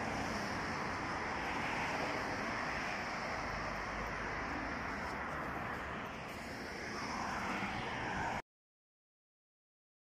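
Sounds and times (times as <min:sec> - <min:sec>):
car driving past: 0:00.0 - 0:08.4
road traffic rushing: 0:00.0 - 0:08.4.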